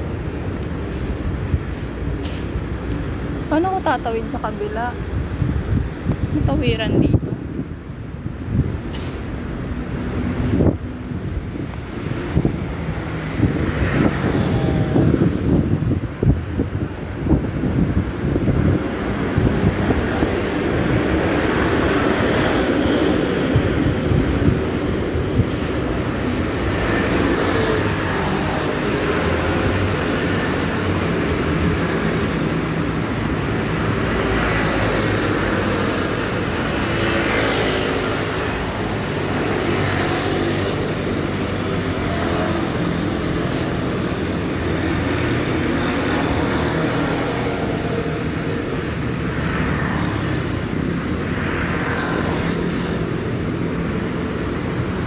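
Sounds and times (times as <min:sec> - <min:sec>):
road traffic: 0:00.0 - 0:55.0
vehicles passing by: 0:00.0 - 0:55.0.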